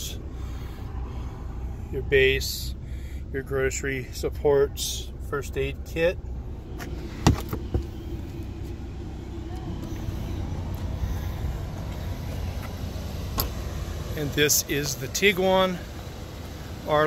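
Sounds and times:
low rumble: 0.0 - 16.9.

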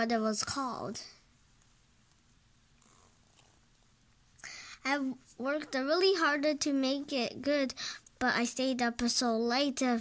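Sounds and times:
faint low room hum: 0.0 - 10.0.

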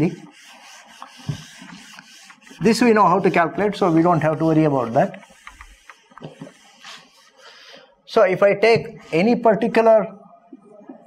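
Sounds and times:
eraser rubbing on whiteboard: 0.0 - 7.6.

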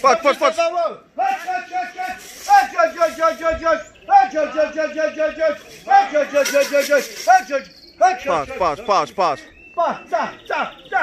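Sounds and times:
man calling pigeons: 0.0 - 11.0.

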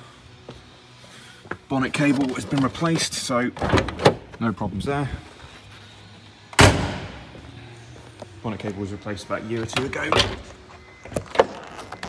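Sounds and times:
car door slamming: 6.6 - 7.3.

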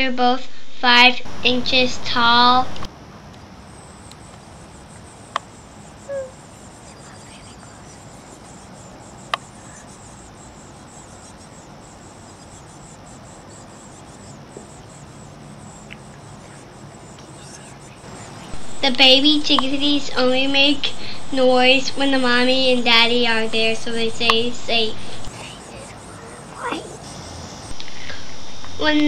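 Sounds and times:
high-pitched insect-like buzz: 5.6 - 15.9, 21.8 - 27.8.

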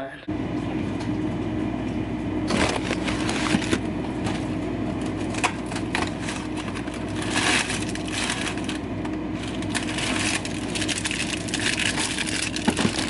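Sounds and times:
steady low hum: 0.0 - 13.0
food packaging crinkling: 2.5 - 13.0.

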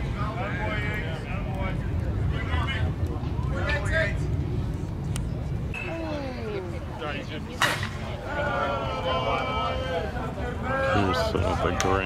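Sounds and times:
voices calling out: 5.8 - 12.0
bat cracking a ball: 7.6 - 8.1.

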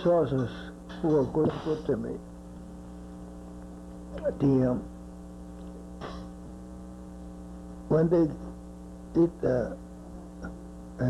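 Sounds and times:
man speaking: 0.0 - 2.2, 4.2 - 4.9, 7.9 - 8.5, 9.2 - 9.8
electrical mains hum: 0.0 - 11.0.

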